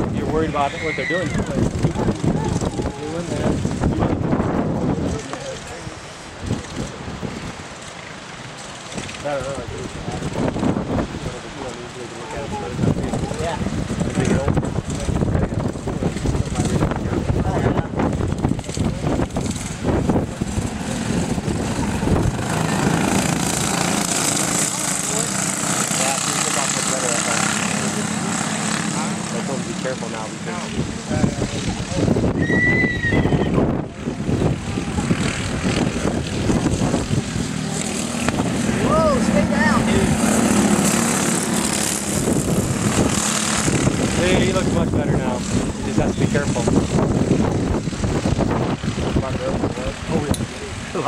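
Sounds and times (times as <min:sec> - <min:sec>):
racing kart engines droning: 0:00.0 - 0:51.0
spectators talking: 0:00.0 - 0:51.0.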